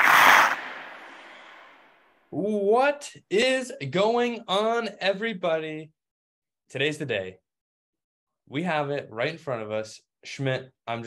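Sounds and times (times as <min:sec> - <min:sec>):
loud rush of noise: 0:00.0 - 0:01.8.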